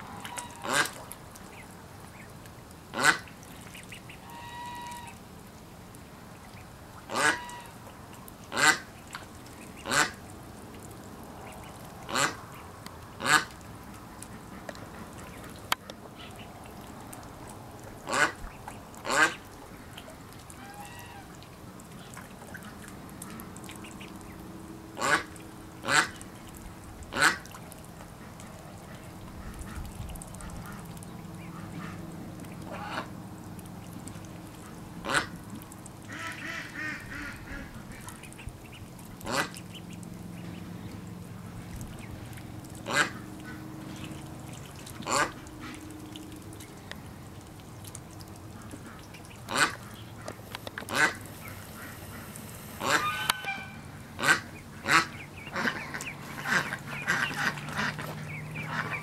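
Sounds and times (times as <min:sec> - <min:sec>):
ducks quacking: 0:00.0 - 0:02.3, 0:02.9 - 0:05.2, 0:07.1 - 0:07.9, 0:08.5 - 0:10.2, 0:11.3 - 0:13.6, 0:18.0 - 0:19.4, 0:20.0 - 0:21.3, 0:22.0 - 0:24.4, 0:25.0 - 0:26.2, 0:27.1 - 0:27.6, 0:28.2 - 0:33.2, 0:34.6 - 0:35.4, 0:36.0 - 0:41.0, 0:41.6 - 0:46.0, 0:48.5 - 0:59.0.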